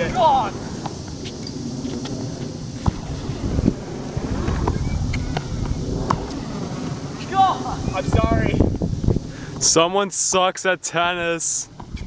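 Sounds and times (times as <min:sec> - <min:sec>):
wind rumbling on microphone: 0:00.0 - 0:10.3, 0:11.0 - 0:12.0.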